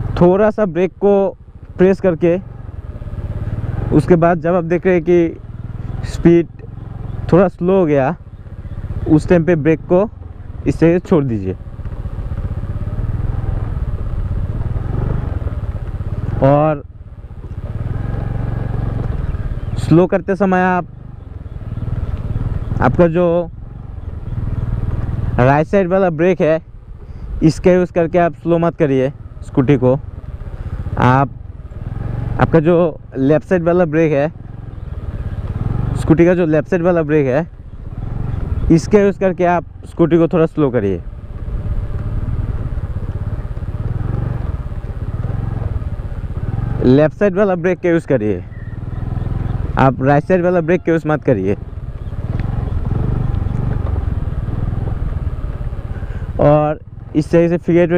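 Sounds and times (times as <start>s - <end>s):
scooter engine running: 0.0s - 57.9s.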